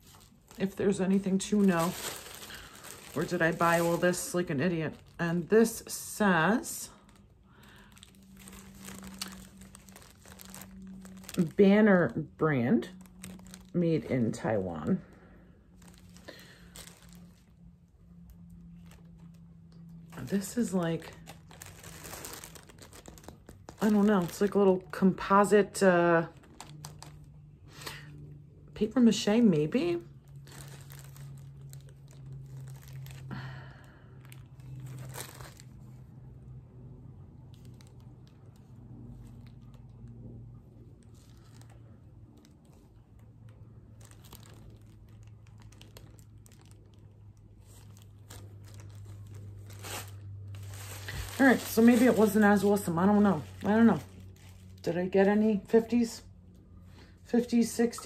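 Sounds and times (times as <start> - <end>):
fingers rustling ornament: 0.0 - 12.1
plastic wrapping crinkling: 0.0 - 56.6
faint low hum: 0.0 - 58.0.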